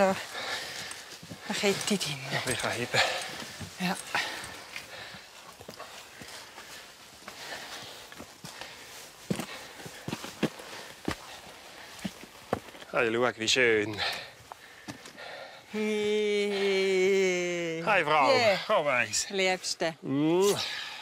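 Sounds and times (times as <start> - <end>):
hiking boots stepping on rock: 0.4 - 12.9, 14.4 - 15.2.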